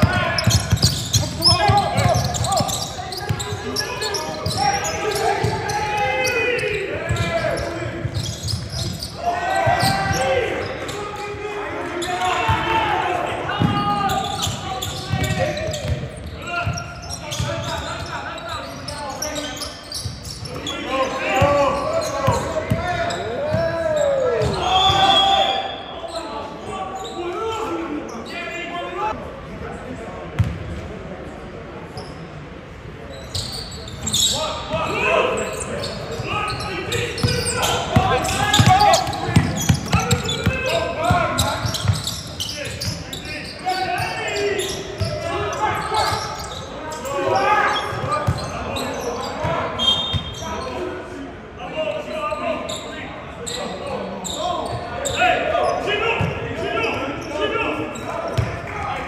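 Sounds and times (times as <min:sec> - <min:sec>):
people shouting and chatting: 0:00.0 - 0:59.0.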